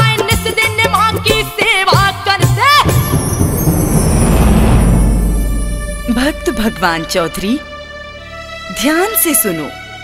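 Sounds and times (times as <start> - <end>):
faint high tone sliding downward: 2.9 - 7.8
loud rushing whoosh: 2.9 - 8.4
deep rumble: 2.9 - 8.5.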